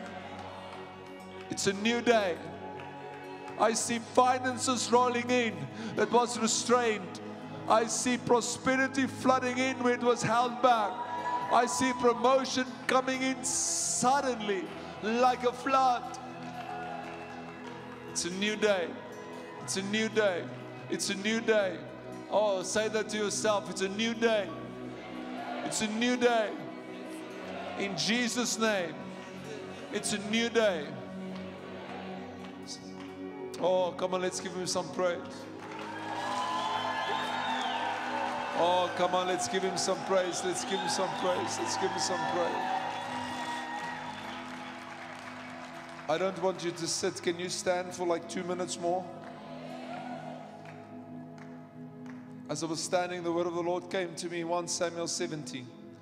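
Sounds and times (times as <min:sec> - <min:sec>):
congregation applauding: 0:00.0 - 0:21.7, 0:22.7 - 0:33.4, 0:34.0 - 0:53.2.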